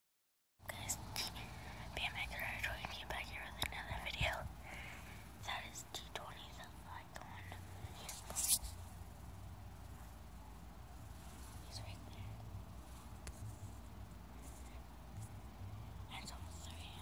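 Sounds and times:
person whispering: 0.7s - 4.5s, 5.4s - 8.6s, 11.5s - 12.4s, 16.0s - 17.0s.

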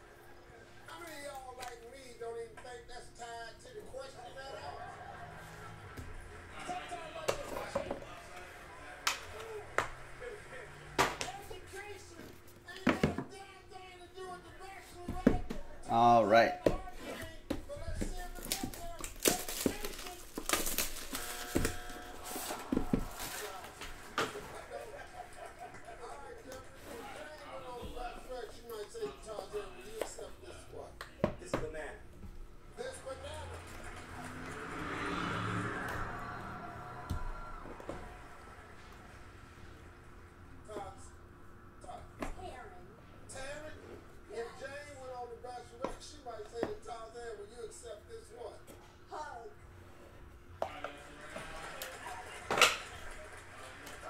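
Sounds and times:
plastic shrink wrap tearing: 18.2s - 23.7s.

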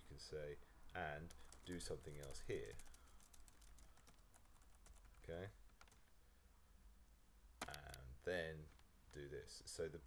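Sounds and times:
keyboard typing: 1.2s - 6.1s.

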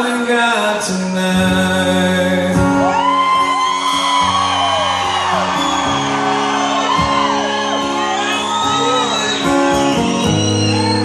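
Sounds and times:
acoustic guitar strumming: 0.0s - 11.0s
audience whooping and shouting: 2.8s - 11.0s.

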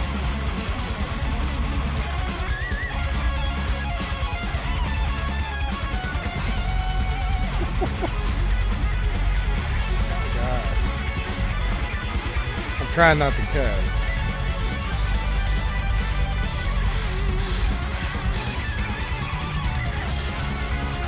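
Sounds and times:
heavy bass and drums: 0.0s - 21.0s
shredding electric lead guitar: 0.0s - 21.0s.

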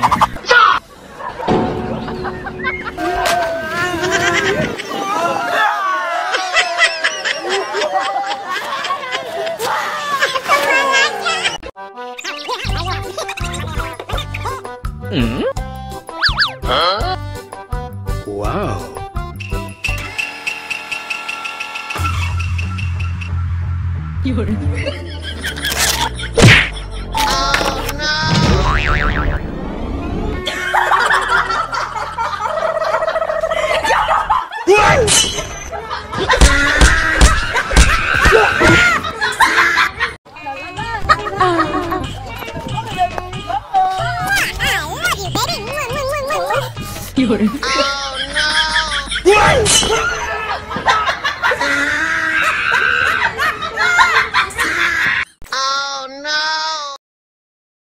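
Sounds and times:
sliding pitched tone: 1.2s - 5.1s
background music: 1.3s - 4.7s, 11.3s - 19.8s
wobbling boing: 1.4s - 4.8s, 28.2s - 29.5s
laughter: 2.9s - 5.3s, 6.2s - 11.6s, 13.0s - 14.6s, 24.6s - 27.3s, 30.4s - 34.7s, 35.7s - 40.2s, 40.9s - 42.4s, 47.2s - 55.2s.

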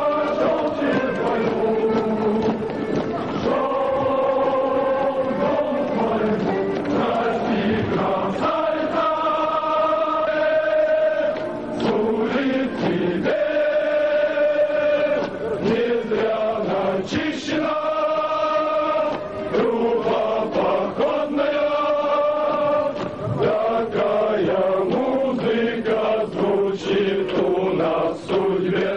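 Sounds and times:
male voices singing in unison: 0.0s - 28.9s.

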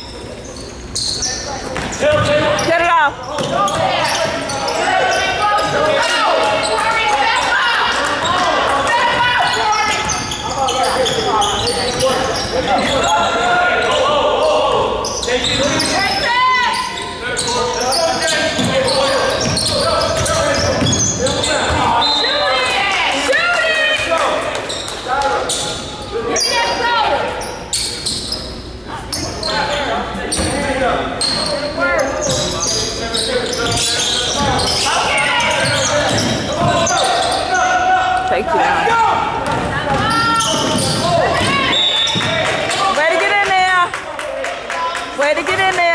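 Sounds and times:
basketball bouncing on wooden floor: 35.4s - 36.9s, 39.4s - 42.4s.

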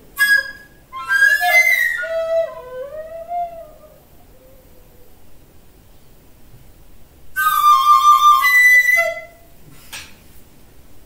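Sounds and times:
flute note bending: 0.2s - 4.8s, 7.4s - 9.5s.

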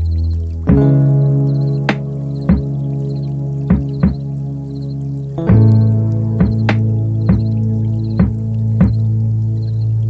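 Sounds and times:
held low chord: 0.0s - 10.0s
soft struck notes: 0.6s - 4.4s, 5.4s - 9.2s.

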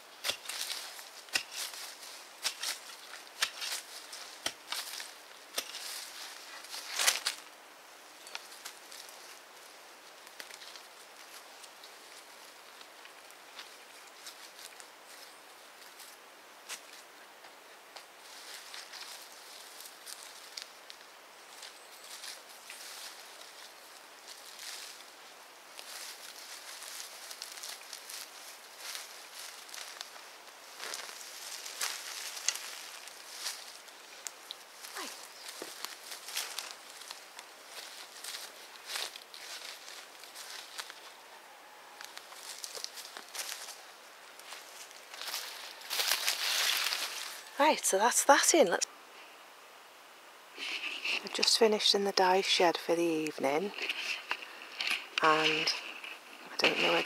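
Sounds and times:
soil being handled and pressed: 0.0s - 7.6s, 8.2s - 41.2s
rustles and crackles of stems: 0.0s - 49.4s, 50.4s - 57.0s
footsteps in boots on soft soil: 21.5s - 47.9s.

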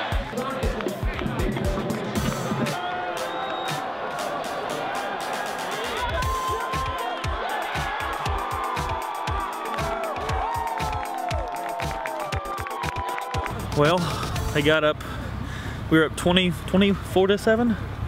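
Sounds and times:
steady drumbeat: 0.0s - 2.8s, 3.7s - 14.7s
crowd cheering and yelling: 0.0s - 14.2s
music: 0.0s - 14.8s.

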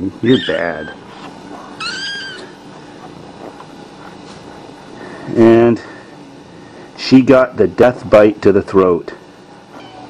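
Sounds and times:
cat meowing: 1.8s - 2.5s.

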